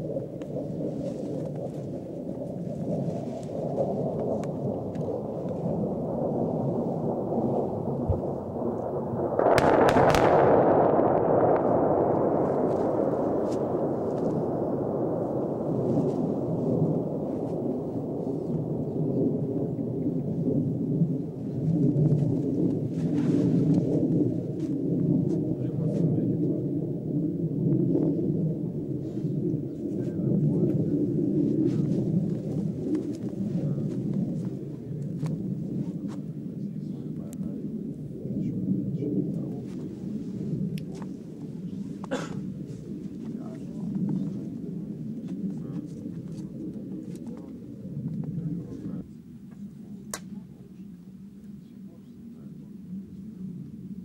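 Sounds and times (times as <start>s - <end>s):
low rumble: 0.0s - 54.0s
distant explosion echoing: 3.8s - 29.7s
faint scattered cracks: 8.8s - 14.4s.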